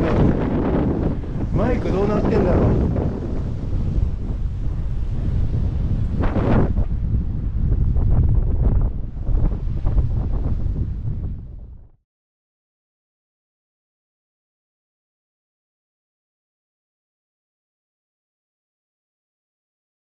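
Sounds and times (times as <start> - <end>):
waves breaking on shore: 0.0 - 7.6
wind buffeting microphone: 0.0 - 12.0.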